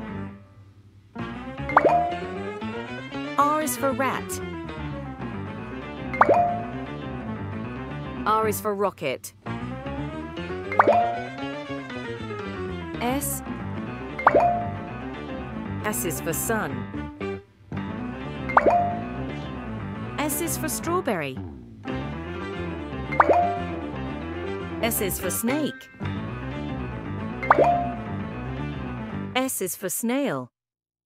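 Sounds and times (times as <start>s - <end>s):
children's background music: 1.2s - 29.2s
cartoon plop: 1.7s - 2.2s, 6.2s - 6.7s, 10.7s - 11.4s, 14.2s - 14.8s, 18.5s - 19.1s, 23.1s - 23.7s, 27.4s - 28.0s.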